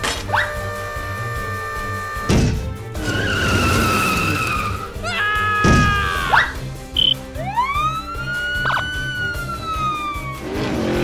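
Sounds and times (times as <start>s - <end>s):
background music: 0.0s - 11.0s
heavy cartoon thump: 2.3s - 2.8s, 5.6s - 6.0s
tyre screech: 3.0s - 5.2s.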